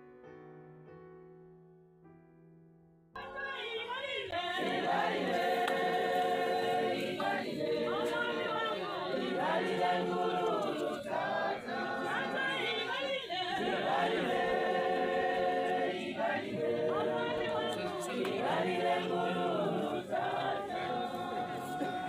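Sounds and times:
group singing unaccompanied: 0:03.2 - 0:22.0.

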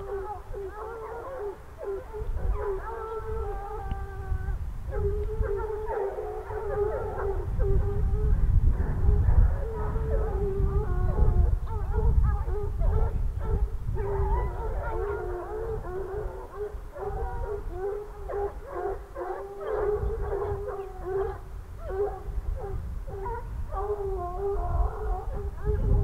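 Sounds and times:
hounds baying: 0:00.0 - 0:26.0.

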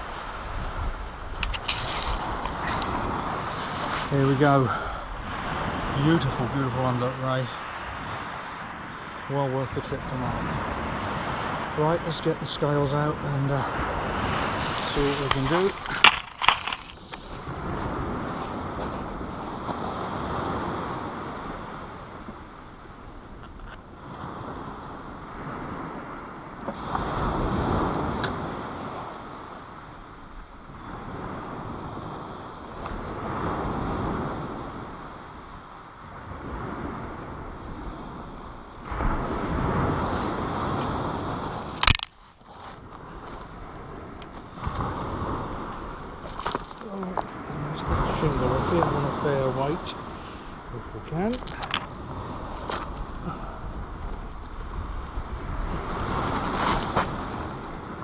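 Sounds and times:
waves breaking on shingle beach: 0:00.0 - 0:58.0.

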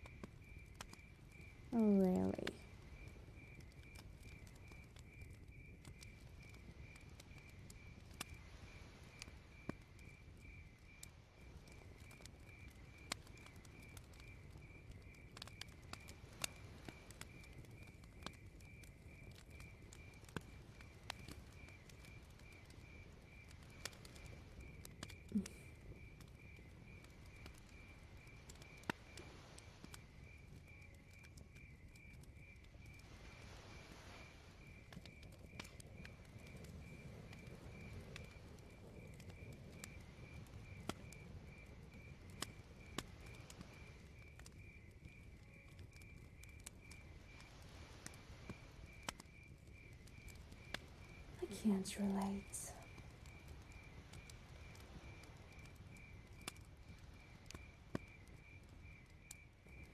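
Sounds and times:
crickets chirping: 0:00.0 - 0:59.9
fire crackling and popping: 0:00.0 - 0:59.9.

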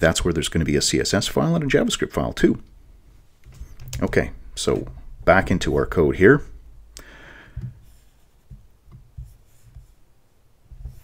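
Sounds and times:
faint low thumps of hands at desk: 0:07.5 - 0:10.0.

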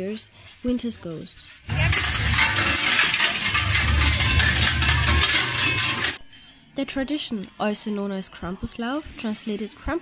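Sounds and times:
large bells jangling: 0:01.7 - 0:06.2.

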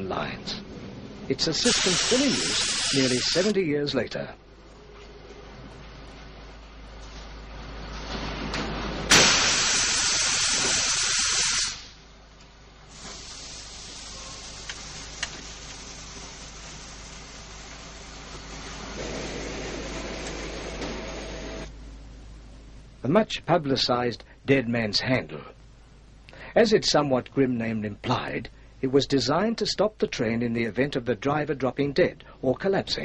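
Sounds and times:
steady air hiss: 0:01.4 - 0:03.6, 0:09.1 - 0:12.0, 0:12.8 - 0:20.1
compressed air blast from brakes: 0:01.7 - 0:03.5, 0:09.1 - 0:12.0, 0:12.9 - 0:14.8.

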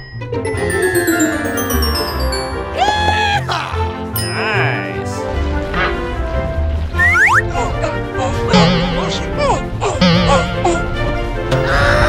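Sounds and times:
children's background music: 0:00.0 - 0:12.0
rising boing slide: 0:10.0 - 0:10.8.

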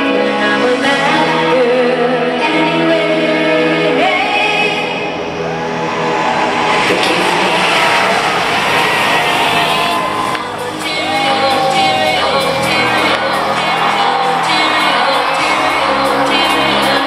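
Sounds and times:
person singing: 0:00.0 - 0:05.1, 0:06.9 - 0:17.0
live pop dance music: 0:00.0 - 0:17.0.

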